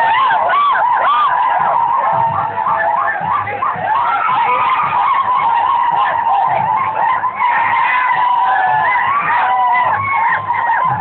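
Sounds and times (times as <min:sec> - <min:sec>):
crowd cries: 0:00.0 - 0:11.0
low steady beat: 0:00.0 - 0:11.0.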